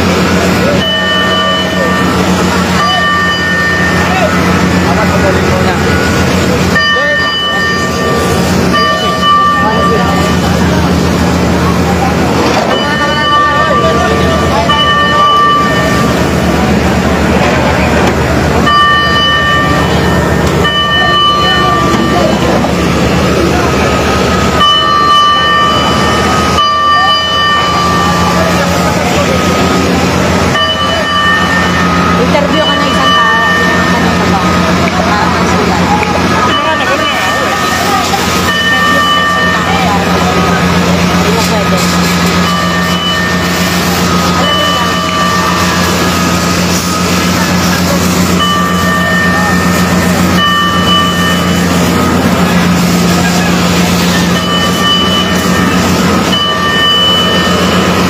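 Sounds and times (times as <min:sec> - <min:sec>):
fire truck engine humming: 0:00.0 - 0:58.0.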